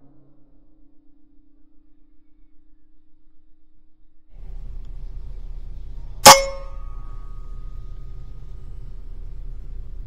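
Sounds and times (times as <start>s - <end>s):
metallic ring: 6.0s - 9.8s.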